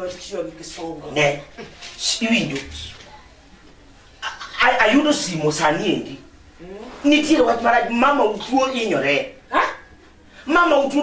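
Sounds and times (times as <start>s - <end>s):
man talking: 4.4s - 6.2s, 7.0s - 9.4s.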